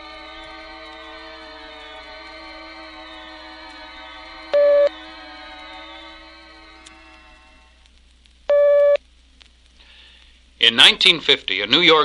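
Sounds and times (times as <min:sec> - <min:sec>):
steady beep: 0:04.6 - 0:04.9, 0:08.5 - 0:09.0.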